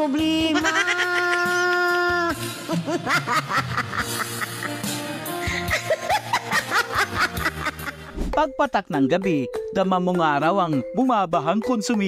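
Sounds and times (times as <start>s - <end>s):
music: 0.0s - 12.0s
woman laughing into a microphone: 0.4s - 8.2s.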